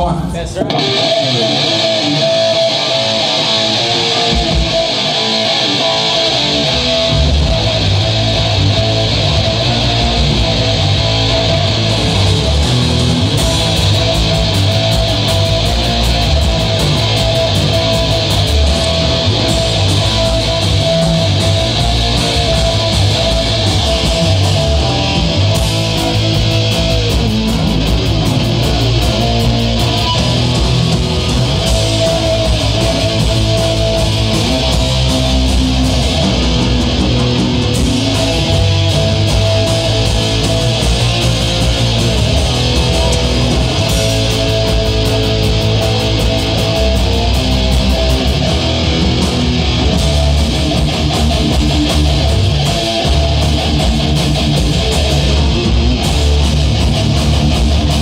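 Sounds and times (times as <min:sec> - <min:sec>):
bass guitar: 0:00.0 - 0:58.0
distorted electric guitar: 0:00.0 - 0:58.0.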